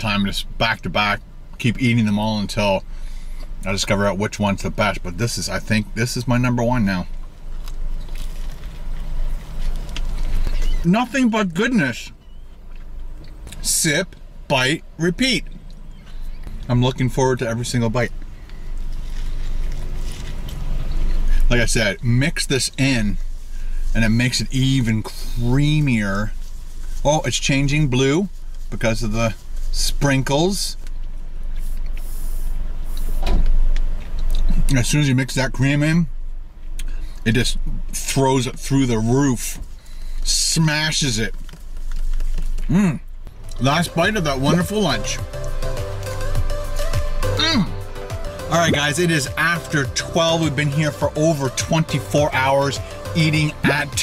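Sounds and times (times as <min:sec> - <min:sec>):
car interior rumble: 0:00.0 - 0:54.0
chewing crunches: 0:07.5 - 0:10.8.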